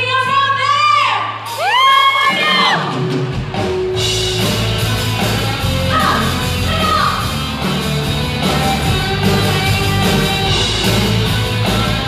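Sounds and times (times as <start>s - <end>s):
drums and bass: 0.0s - 12.0s
live rock band: 1.2s - 12.0s.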